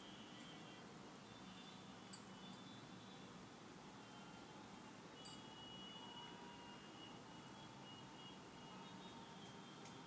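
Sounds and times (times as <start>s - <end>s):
faint thin high tones: 0.0s - 3.4s, 4.0s - 10.0s.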